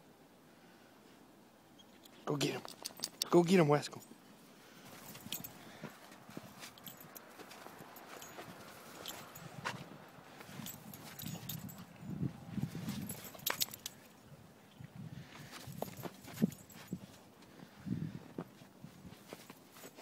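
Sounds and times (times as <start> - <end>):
paws crunching through snow: 4.7 - 13.7, 15.3 - 20.0.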